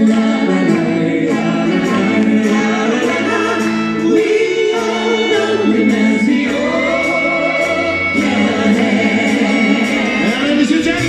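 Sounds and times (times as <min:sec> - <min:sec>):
keyboards: 0:00.0 - 0:11.0
steady drum beat: 0:00.0 - 0:11.0
voices singing together: 0:00.0 - 0:11.0.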